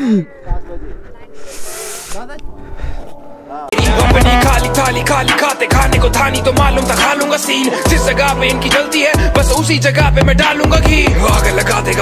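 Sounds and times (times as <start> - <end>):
people's voices: 0.0 - 6.4.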